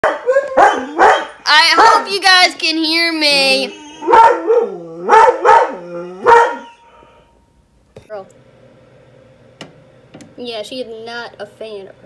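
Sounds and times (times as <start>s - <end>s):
dog barking: 0.0s - 2.1s, 4.0s - 6.8s.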